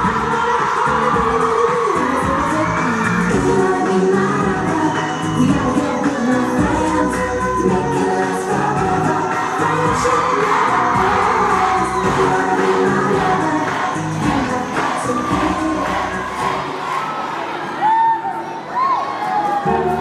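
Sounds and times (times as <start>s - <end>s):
crowd cheering and shouting: 0.0s - 20.0s
music with singing over loudspeakers: 0.0s - 20.0s.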